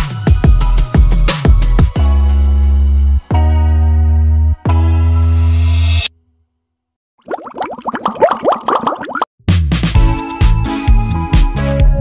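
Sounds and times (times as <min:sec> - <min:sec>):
background music with strong beat: 0:00.0 - 0:02.3, 0:09.5 - 0:12.0
rising plops sound effect: 0:07.2 - 0:09.3.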